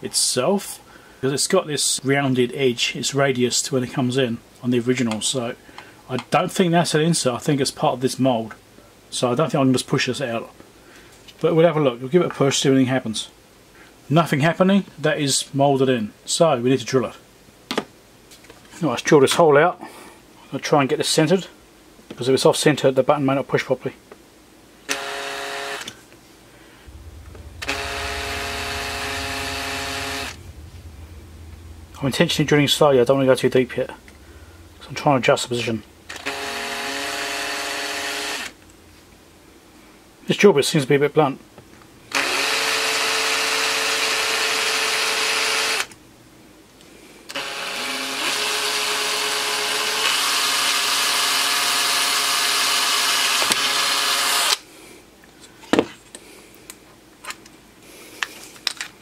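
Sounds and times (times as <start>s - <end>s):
cordless drill drilling plastic: 36.1s - 38.6s, 42.1s - 45.9s, 47.3s - 54.6s.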